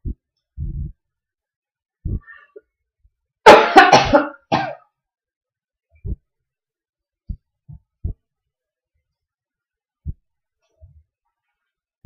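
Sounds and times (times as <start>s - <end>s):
man coughing: 3.5s - 4.8s.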